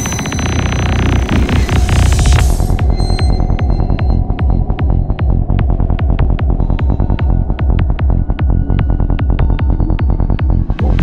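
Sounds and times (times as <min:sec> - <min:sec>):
dark psytrance music: 0:00.0 - 0:11.0
pulsing bass line: 0:00.0 - 0:11.0.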